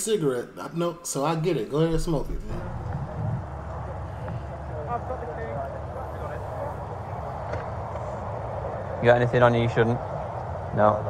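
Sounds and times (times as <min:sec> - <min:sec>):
wind rumble: 0:01.8 - 0:11.0
faint indistinct voices: 0:01.9 - 0:11.0
roadside traffic: 0:01.9 - 0:11.0.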